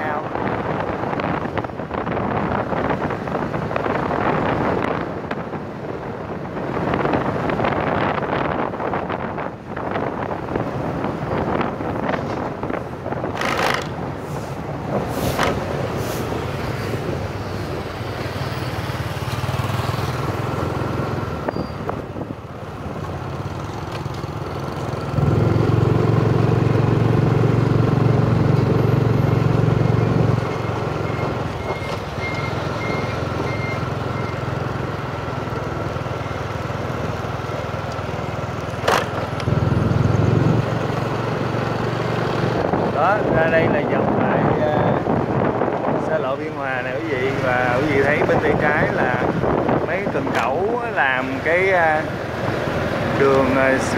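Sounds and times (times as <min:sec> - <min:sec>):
wind rumbling on microphone: 0:00.0 - 0:33.8, 0:34.6 - 0:53.9
road noise: 0:00.0 - 0:53.9
motorbike engine: 0:13.3 - 0:14.1.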